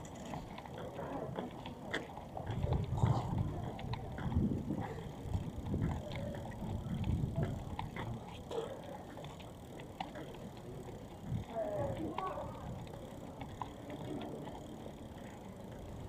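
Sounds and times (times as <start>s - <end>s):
faint distant voices: 0.8s - 16.0s.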